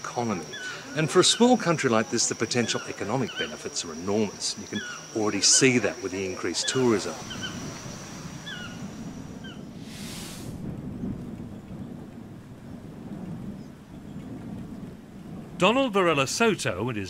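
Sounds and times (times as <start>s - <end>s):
brief hiss: 9.8s - 10.7s.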